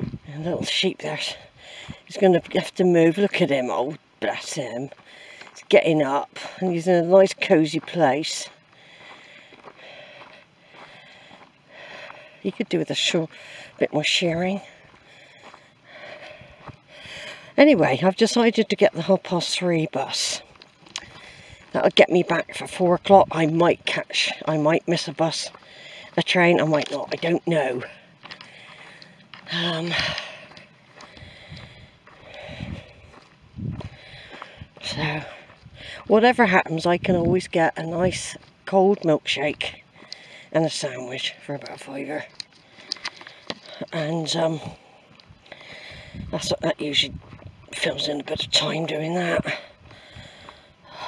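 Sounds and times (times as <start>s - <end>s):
footsteps on stony dirt track: 0.0s - 51.0s.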